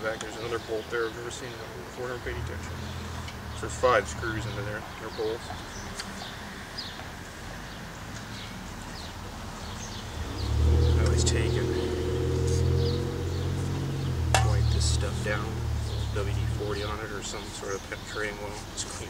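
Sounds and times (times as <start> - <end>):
motor engine hum: 10.0 - 17.0.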